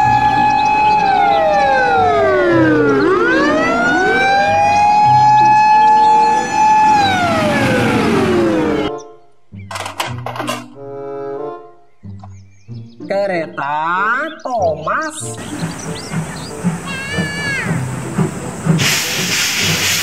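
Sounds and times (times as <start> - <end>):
fire engine siren wailing: 0.0 - 8.9.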